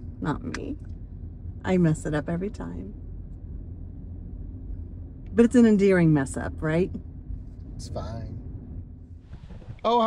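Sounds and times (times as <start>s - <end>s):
car interior engine and road rumble: 0.0s - 10.0s.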